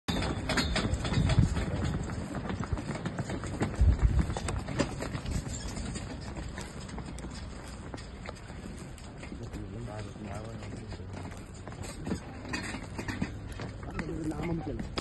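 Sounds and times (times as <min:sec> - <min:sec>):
hooves clip-clopping on pavement: 0:00.1 - 0:15.0.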